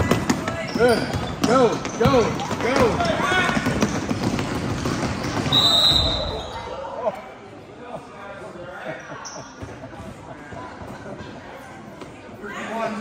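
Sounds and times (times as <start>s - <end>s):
basketball bouncing: 0.0s - 5.6s
voices of crowd and players: 0.0s - 13.0s
referee's whistle: 5.5s - 6.6s.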